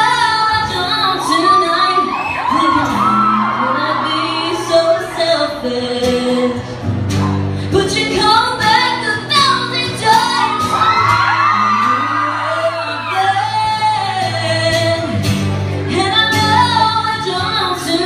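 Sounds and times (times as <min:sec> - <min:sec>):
acoustic guitar: 0:00.0 - 0:18.0
woman singing pop song: 0:00.0 - 0:18.0.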